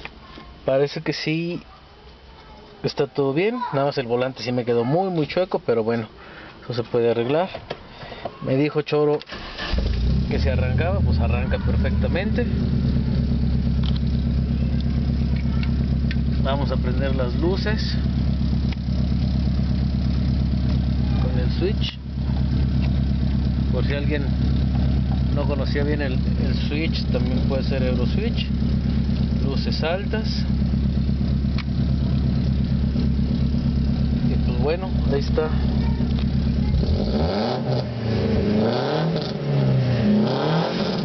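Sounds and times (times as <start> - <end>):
car engine idling: 9.3 - 41.0.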